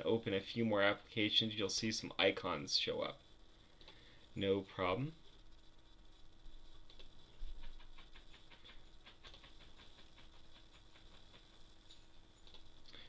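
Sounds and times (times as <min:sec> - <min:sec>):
computer mouse clicks: 0:03.8 - 0:04.0, 0:06.8 - 0:12.8.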